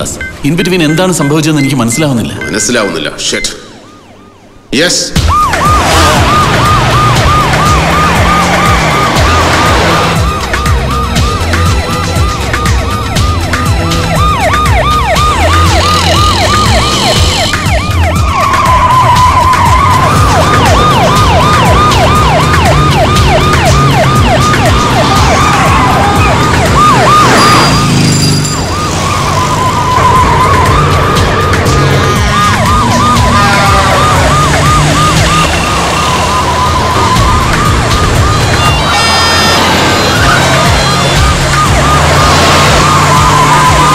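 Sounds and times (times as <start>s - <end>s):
police siren yelping: 0.0s - 43.9s
rhythmic film score: 5.2s - 27.9s, 28.5s - 43.9s.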